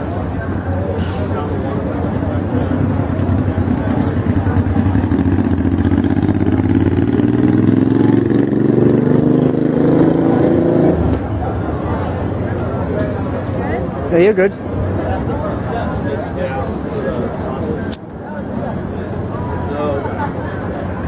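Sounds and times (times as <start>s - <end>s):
vehicle engine accelerating: 1.7s - 13.5s.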